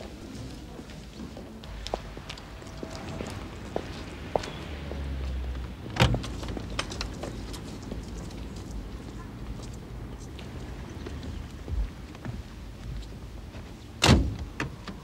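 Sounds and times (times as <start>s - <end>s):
footsteps on street: 0.0s - 14.0s
car door slamming: 14.0s - 14.7s.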